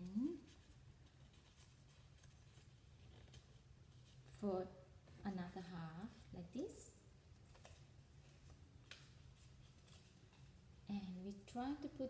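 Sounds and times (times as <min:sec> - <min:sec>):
paper being folded by hand: 0:00.0 - 0:04.4
faint room hum: 0:00.0 - 0:12.0.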